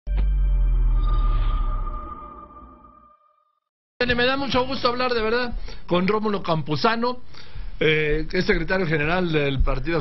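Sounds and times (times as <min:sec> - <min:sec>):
high ringing tone: 0:00.1 - 0:03.6.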